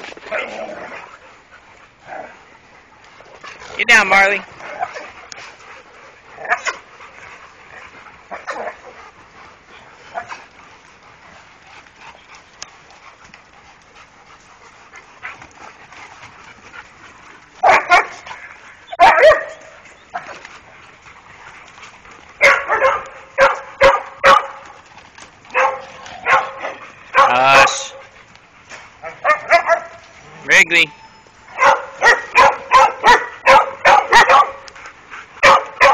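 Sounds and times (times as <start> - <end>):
dogs barking: 3.2 - 24.8, 25.5 - 30.7, 31.5 - 35.9.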